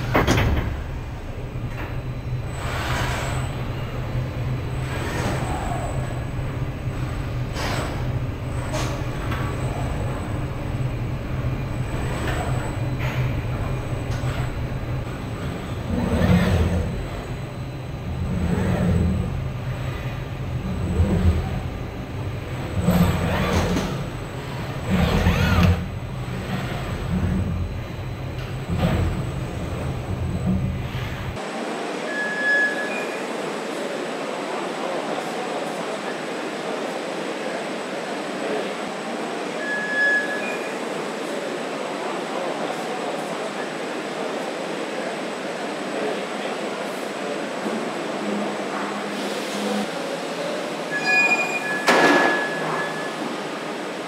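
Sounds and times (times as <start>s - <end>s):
factory line rumble and clunks: 0.0s - 31.6s
short high beeps: 32.1s - 33.2s.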